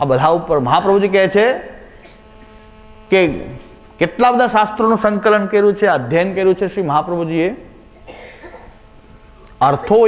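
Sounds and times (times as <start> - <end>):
man speaking: 0.0 - 2.0, 3.1 - 7.7, 9.6 - 10.0
electrical mains hum: 0.0 - 10.0.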